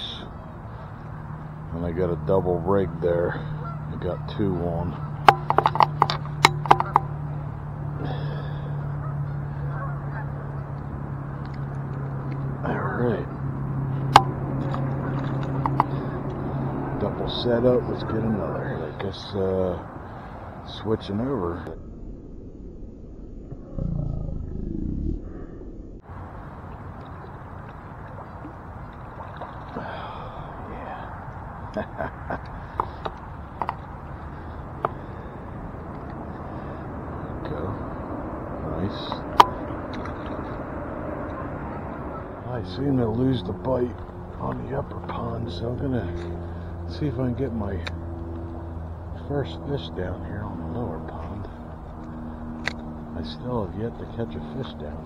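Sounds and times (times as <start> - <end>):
geese honking: 0.0 - 21.0, 41.2 - 47.0
outdoor noise: 0.0 - 55.0
steady low hum: 0.0 - 55.0.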